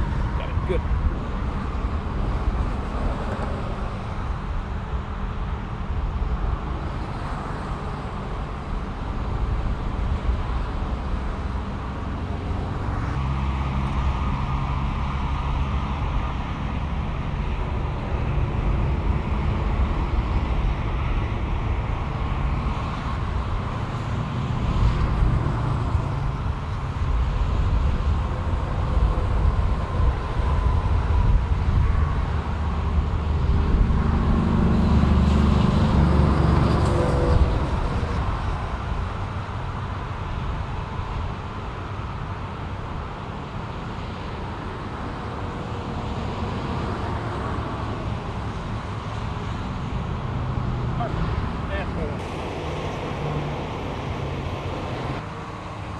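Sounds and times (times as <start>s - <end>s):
heavy vehicle engines rumbling: 0.0s - 55.9s.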